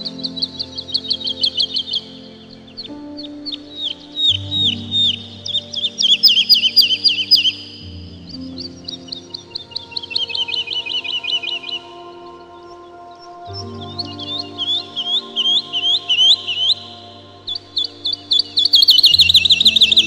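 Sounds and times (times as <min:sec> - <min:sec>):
soft held music chords: 0:00.0 - 0:20.0
songbird chirping: 0:00.0 - 0:20.0.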